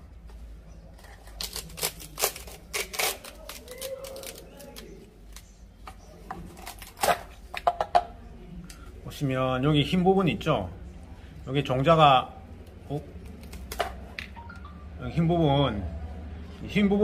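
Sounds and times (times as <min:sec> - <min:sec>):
dry fruit pod crackling: 0:00.1 - 0:10.8, 0:11.4 - 0:14.4.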